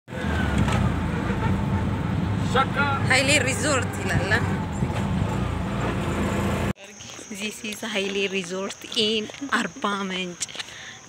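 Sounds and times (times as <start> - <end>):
vehicle engine running: 0.1 - 6.8.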